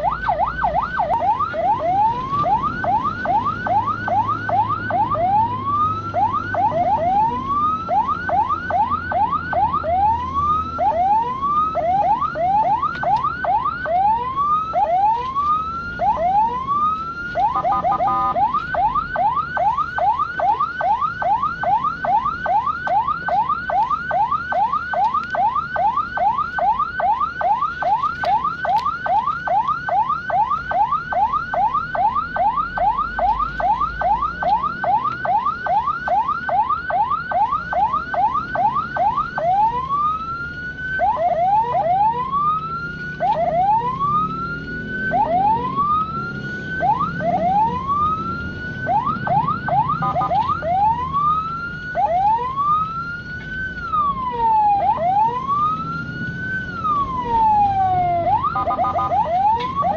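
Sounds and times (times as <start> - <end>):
ambulance siren: 0.0 - 59.9.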